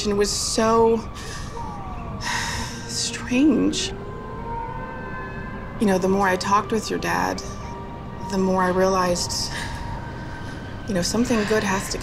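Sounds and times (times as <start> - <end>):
woman speaking emotionally: 0.0 - 3.9, 5.8 - 7.6, 8.2 - 9.8, 10.9 - 12.0.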